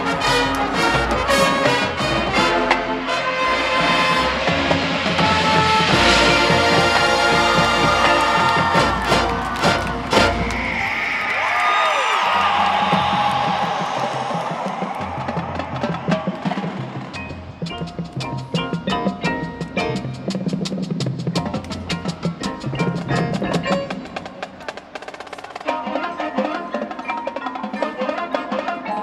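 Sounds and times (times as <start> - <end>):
marching band chords: 0.0 - 11.0, 12.2 - 28.9.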